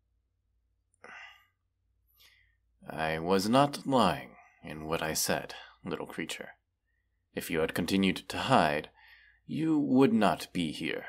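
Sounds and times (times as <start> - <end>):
man sighing: 1.0 - 1.5.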